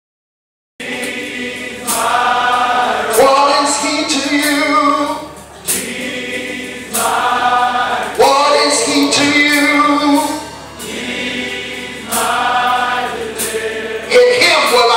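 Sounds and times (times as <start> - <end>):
choir singing gospel: 0.8 - 14.9.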